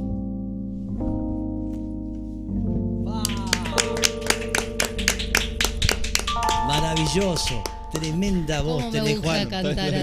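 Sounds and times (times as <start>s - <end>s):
held keyboard chord: 0.0s - 10.0s
people clapping: 3.1s - 10.0s.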